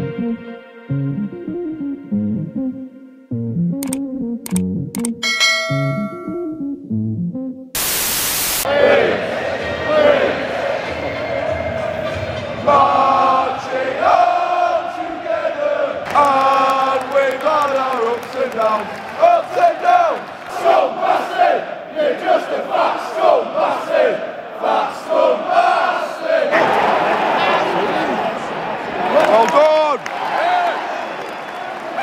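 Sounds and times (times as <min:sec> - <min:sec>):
burst of static hiss: 0:07.8 - 0:08.7
stadium crowd singing a chant: 0:08.6 - 0:28.1.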